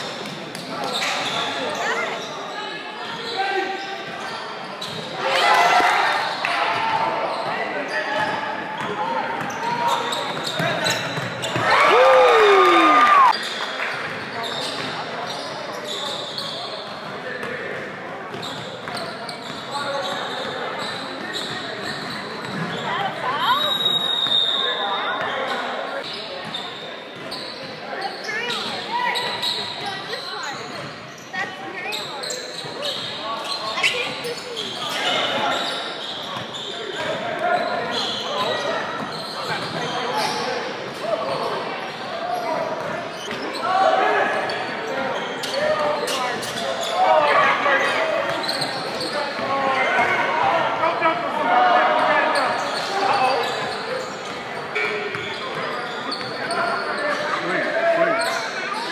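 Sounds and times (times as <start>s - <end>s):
indistinct voices in echoing hall: 0.0s - 58.9s.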